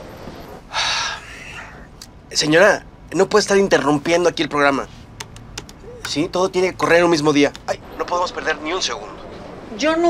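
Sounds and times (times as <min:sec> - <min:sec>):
person gasping: 0:00.7 - 0:01.9.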